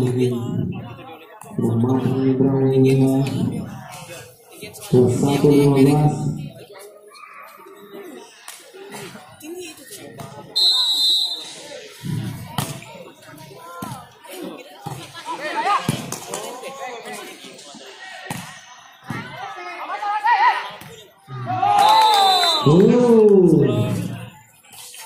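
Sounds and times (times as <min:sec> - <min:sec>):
referee's whistle: 0:10.6 - 0:11.6, 0:21.7 - 0:22.9
players shouting: 0:17.7 - 0:24.3.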